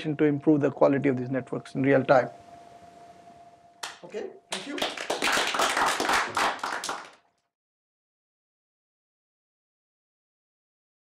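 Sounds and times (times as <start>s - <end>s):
audience applauding: 3.8s - 7.2s.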